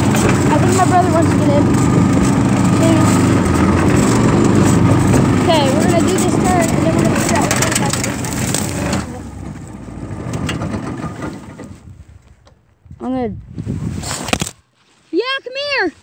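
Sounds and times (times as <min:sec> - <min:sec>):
go-kart engine rumble: 0:00.0 - 0:12.7.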